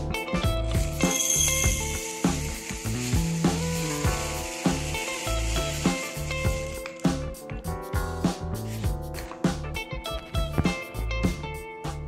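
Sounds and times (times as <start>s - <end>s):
guitar music: 0.0s - 12.0s.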